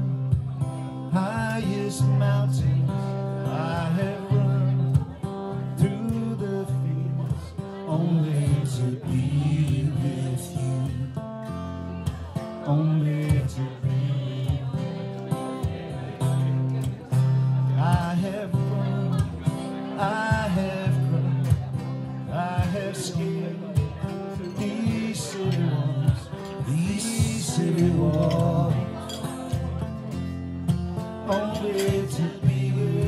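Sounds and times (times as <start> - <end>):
acoustic guitars strumming: 0.0 - 33.0.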